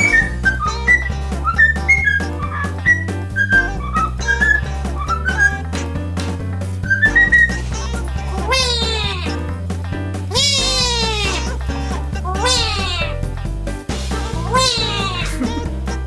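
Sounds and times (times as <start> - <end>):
cockatiel whistling: 0.0 - 5.7, 6.8 - 7.6
background music with a beat: 0.0 - 16.0.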